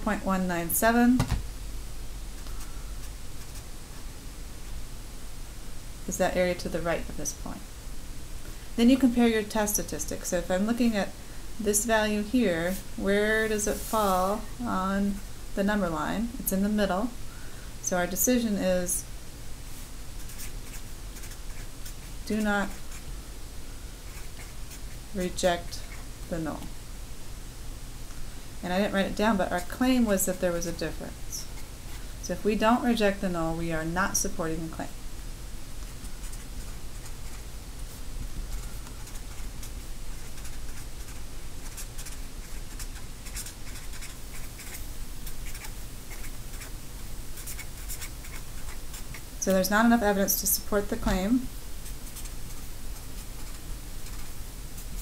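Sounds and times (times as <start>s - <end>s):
steady low hum: 0.0s - 55.0s
marker writing on paper: 20.2s - 23.0s, 38.5s - 46.7s, 47.4s - 49.2s.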